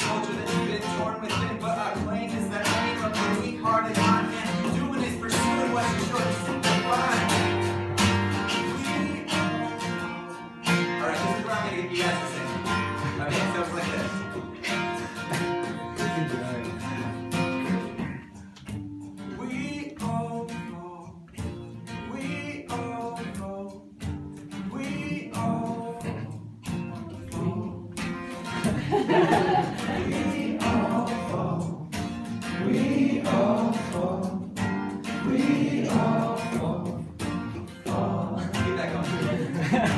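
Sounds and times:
acoustic guitar strumming: 0.0s - 39.9s.

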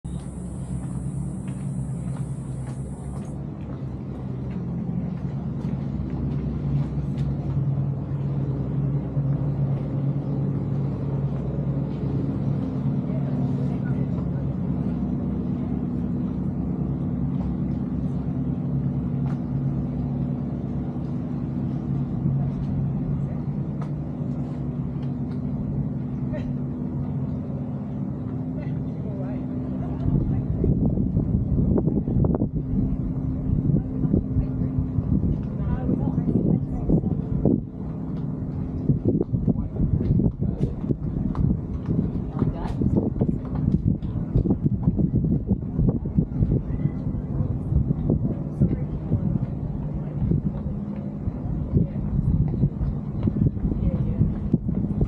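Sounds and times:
low motor hum: 0.0s - 55.0s.

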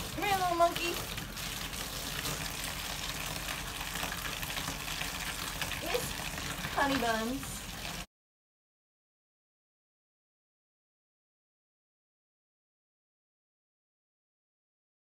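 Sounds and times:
bathtub faucet running: 0.0s - 8.1s.

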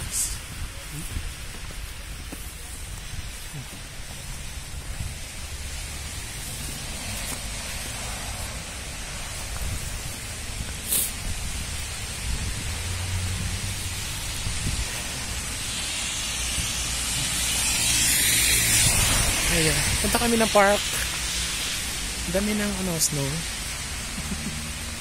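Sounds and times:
wind buffeting microphone: 0.0s - 20.8s.

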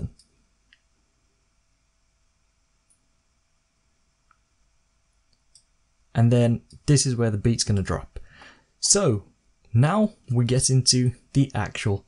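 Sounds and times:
computer mouse clicks: 5.3s - 5.7s.

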